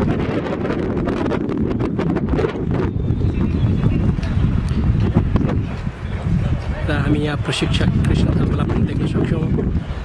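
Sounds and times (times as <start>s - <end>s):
wind buffeting microphone: 0.0s - 10.0s
faint voices: 5.7s - 9.7s.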